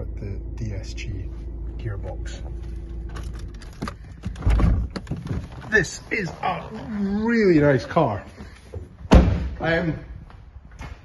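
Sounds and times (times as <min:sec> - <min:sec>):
loud low thump: 0:09.1 - 0:09.6.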